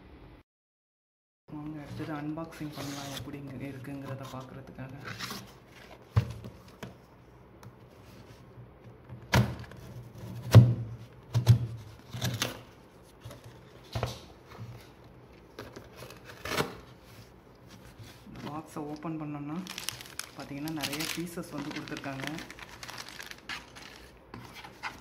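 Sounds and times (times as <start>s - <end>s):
cardboard rustling: 19.5s - 25.0s.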